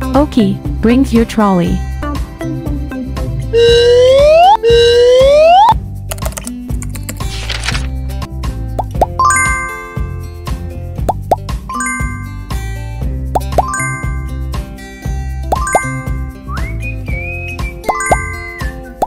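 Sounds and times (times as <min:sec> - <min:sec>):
children's background music: 0:00.0 - 0:07.5, 0:08.1 - 0:19.0
rising plop blips: 0:13.4 - 0:14.3, 0:15.5 - 0:16.3, 0:17.8 - 0:18.7.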